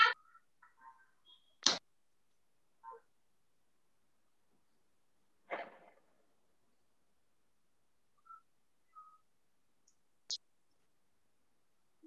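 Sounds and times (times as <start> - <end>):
faint high whistle-like chirps: 1.0 - 1.6, 8.2 - 9.4.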